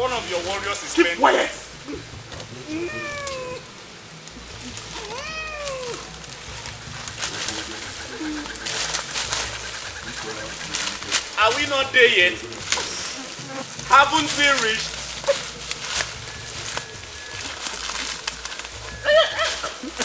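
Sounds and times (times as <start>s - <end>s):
short crackling strokes: 0.0s - 20.0s
meow-like vocal calls: 2.5s - 3.7s, 4.6s - 6.2s.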